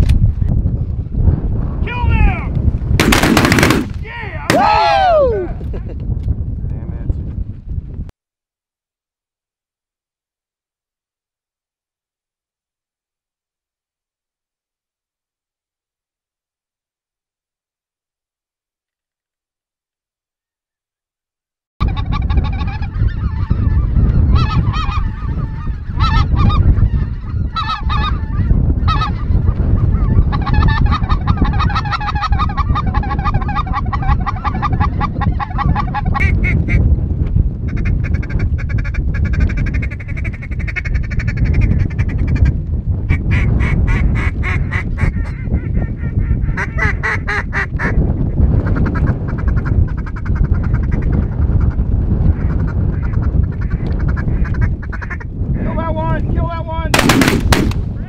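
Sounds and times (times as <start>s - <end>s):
wind buffeting microphone: 0.0s - 8.1s, 21.8s - 58.0s.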